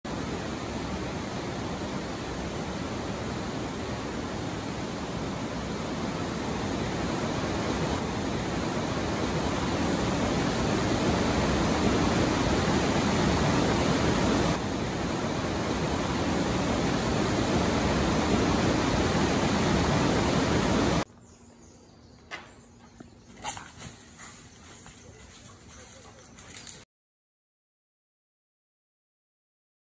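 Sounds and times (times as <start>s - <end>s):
steady rushing noise: 0.1s - 21.0s
faint ticks and rustles: 23.4s - 26.8s.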